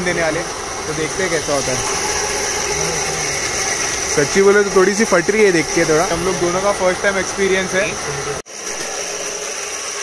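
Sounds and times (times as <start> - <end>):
machine humming and hissing: 0.0 - 10.0.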